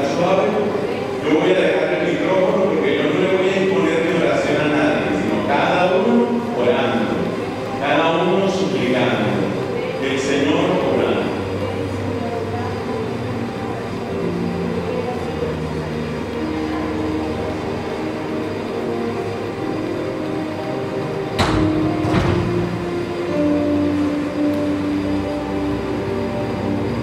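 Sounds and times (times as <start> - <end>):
electronic keyboard chords: 0.0 - 27.0.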